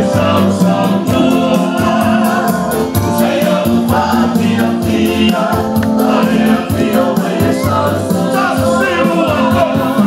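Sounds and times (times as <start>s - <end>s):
backing music with quick beat: 0.0s - 10.0s
church choir singing: 0.0s - 10.0s.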